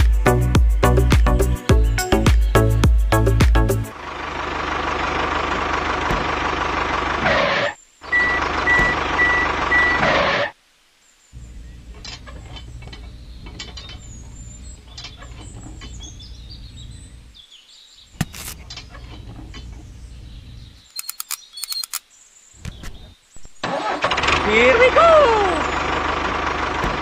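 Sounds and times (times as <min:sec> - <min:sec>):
birds chirping: 0:00.8 - 0:03.9, 0:05.0 - 0:23.8, 0:24.4 - 0:27.0
heavy vehicle running: 0:02.1 - 0:10.5, 0:23.6 - 0:27.0
reversing beep: 0:08.1 - 0:10.1.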